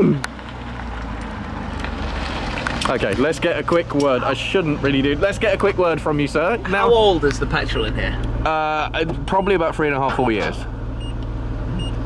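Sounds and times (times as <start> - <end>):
car engine low hum: 0.0 - 12.0.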